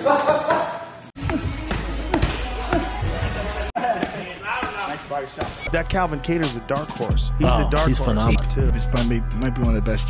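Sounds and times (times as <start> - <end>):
person talking: 7.3 - 9.6.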